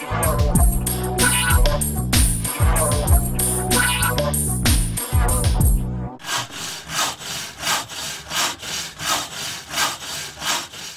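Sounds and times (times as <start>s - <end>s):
rhythmic scraping strokes: 0.0s - 10.9s.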